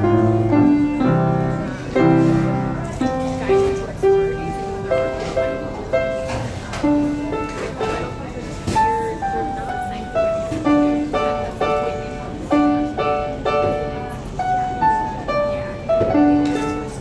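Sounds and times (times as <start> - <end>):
upright piano playing: 0.0 - 17.0.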